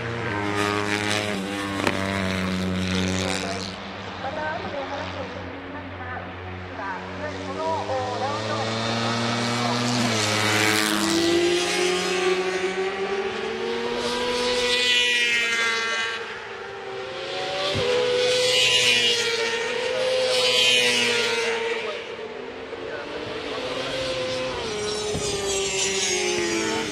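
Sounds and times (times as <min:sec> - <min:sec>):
racing motorcycle engines revving: 0:00.0 - 0:26.9.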